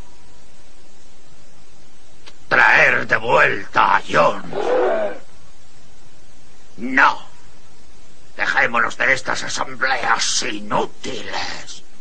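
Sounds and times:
cartoon animals crying out: 4.2s - 5.2s.

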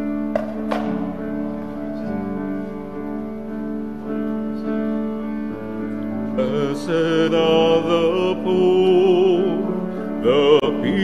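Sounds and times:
piano accompaniment: 0.0s - 11.0s
person singing with vibrato: 6.3s - 11.0s.

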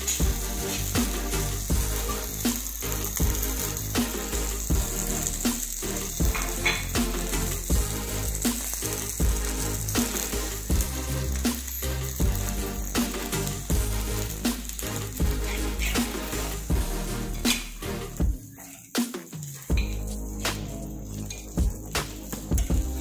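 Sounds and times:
fish fillets sizzling in oil: 0.0s - 18.1s
background music with steady beat: 0.0s - 23.0s.

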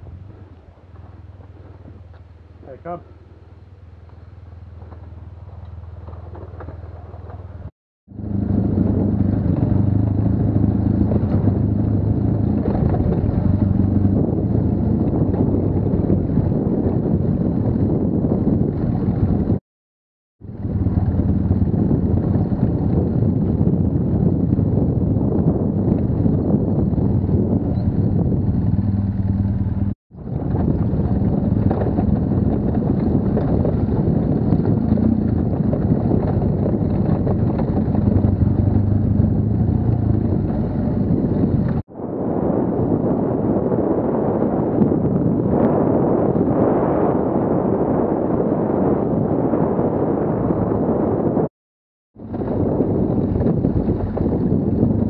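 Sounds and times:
motorcycle engine running: 0.0s - 19.6s, 20.4s - 41.9s, 52.2s - 55.0s
wind rushing over microphone: 0.0s - 19.6s, 20.4s - 51.5s, 52.2s - 55.0s.

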